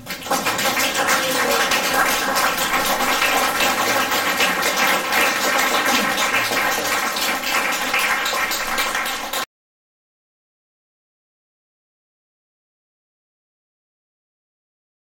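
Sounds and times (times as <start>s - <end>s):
audience applause: 0.0s - 9.5s.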